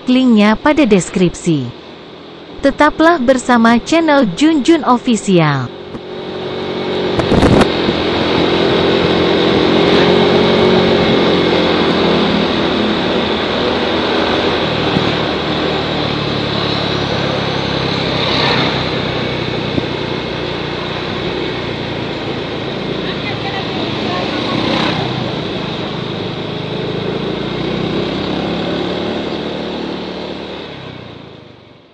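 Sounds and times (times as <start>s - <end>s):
motor scooter engine running: 5.7s - 31.8s
wind rushing over microphone: 7.0s - 11.5s.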